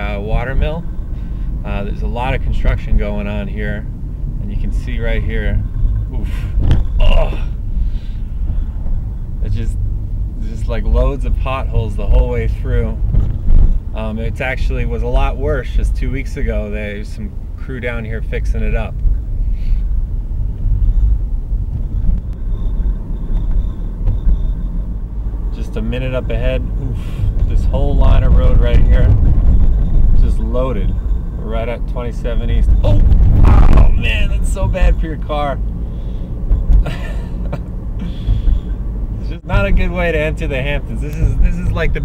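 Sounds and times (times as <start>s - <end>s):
tyre and road noise: 0.0s - 42.0s.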